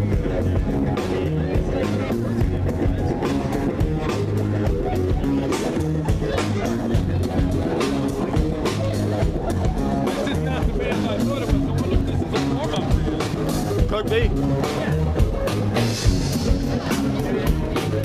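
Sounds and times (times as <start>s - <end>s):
bass: 0.0s - 18.0s
drum kit: 0.0s - 18.0s.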